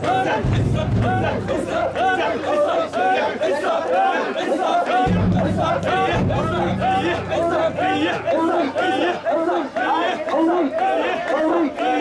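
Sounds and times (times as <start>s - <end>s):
crowd shouting and chanting: 0.0s - 12.0s
steady low hum: 0.4s - 2.4s, 5.1s - 9.0s.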